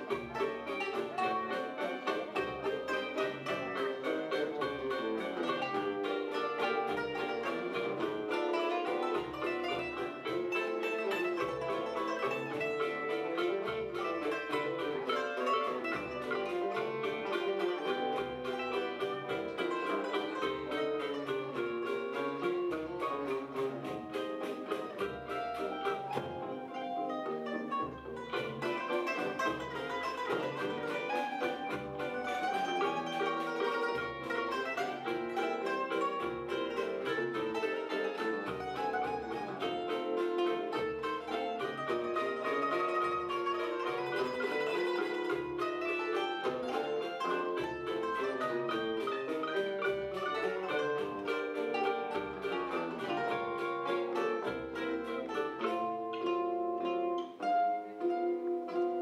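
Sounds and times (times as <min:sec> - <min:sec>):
cavaquinho: 0:00.0 - 0:59.0
mandolin melody: 0:00.0 - 0:59.0
seven-string guitar: 0:00.0 - 0:59.0.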